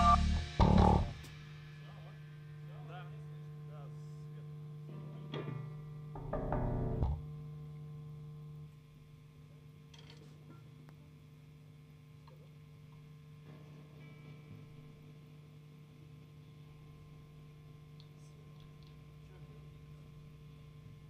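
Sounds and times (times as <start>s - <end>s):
amplifier electric hum: 0.0s - 1.3s, 2.1s - 9.9s.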